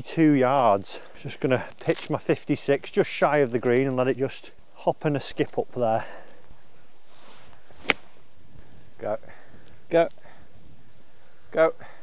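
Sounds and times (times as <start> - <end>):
golf ball struck by club: 7.7 - 8.3.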